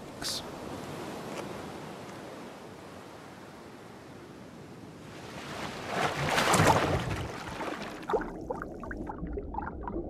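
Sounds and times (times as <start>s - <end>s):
iguana dropping into water: 5.9s - 8.0s.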